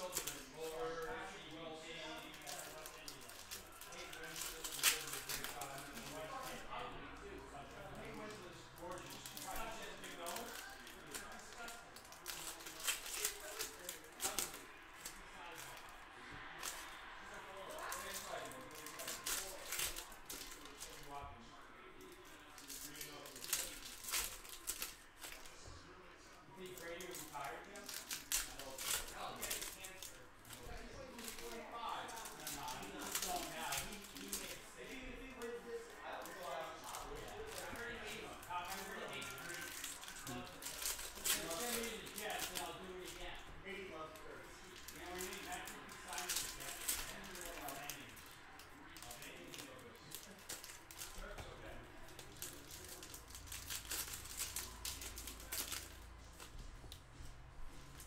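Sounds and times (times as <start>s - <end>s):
foil wrappers crinkling and tearing: 0.0s - 21.2s, 21.8s - 57.0s.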